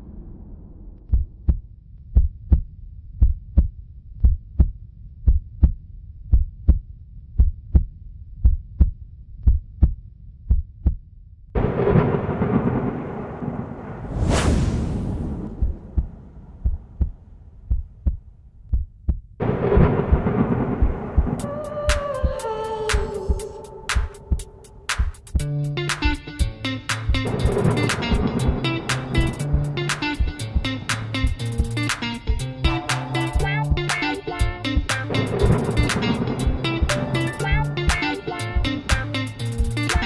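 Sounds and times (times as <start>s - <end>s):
heartbeat-like thumps: 1.0s - 11.8s, 14.2s - 25.5s, 27.1s - 32.4s, 38.5s - 39.0s
whoosh: 11.8s - 17.6s.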